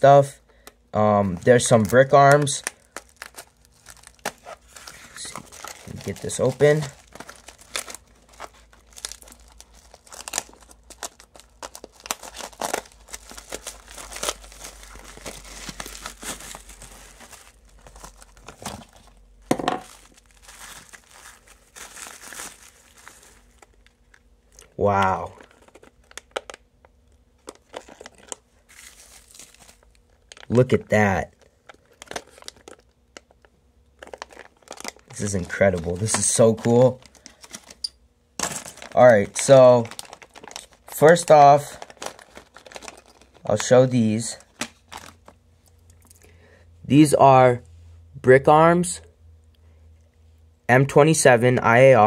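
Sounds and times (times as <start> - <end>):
plastic mailer and bubble wrap crinkling: 1.2 - 46.1.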